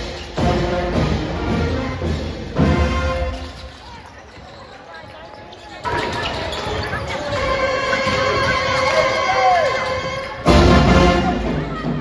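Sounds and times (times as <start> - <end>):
crowd voices: 0.0 - 12.0
brass band sustained chords: 0.4 - 3.4, 10.4 - 11.6.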